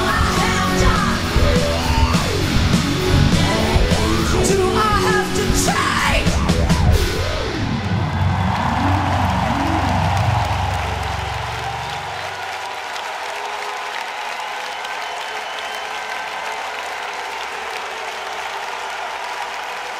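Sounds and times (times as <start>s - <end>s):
live band bass-heavy notes: 0.0s - 12.0s
crowd applauding: 0.0s - 19.9s.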